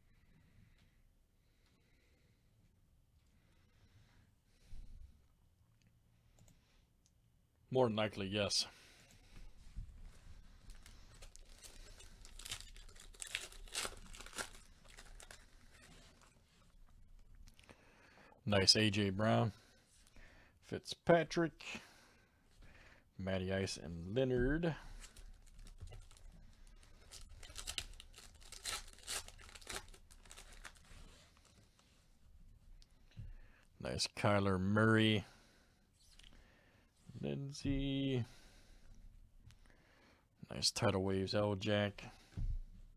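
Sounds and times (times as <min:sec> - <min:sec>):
plastic wrapper rustling: 0:10.1 - 0:16.7, 0:25.0 - 0:31.8
plastic wrapper tearing: 0:10.7 - 0:16.4, 0:25.0 - 0:31.6.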